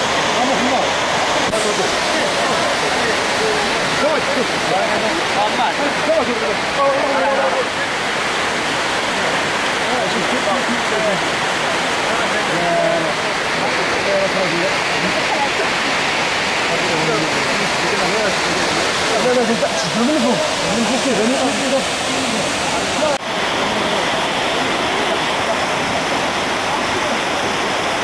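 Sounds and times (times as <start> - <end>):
waterfall rushing: 0.0 - 28.0
faint voices talking: 0.3 - 28.0.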